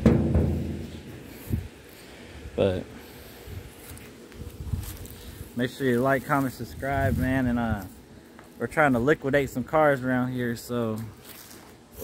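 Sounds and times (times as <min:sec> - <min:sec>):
hand slapping metal car hood: 0:00.0 - 0:00.9.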